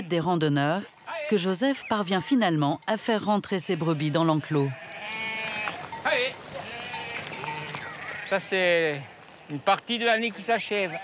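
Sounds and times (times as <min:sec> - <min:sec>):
sheep bleating: 0:00.0 - 0:01.5, 0:03.5 - 0:11.0
shuffle of sheep flock: 0:00.0 - 0:11.0.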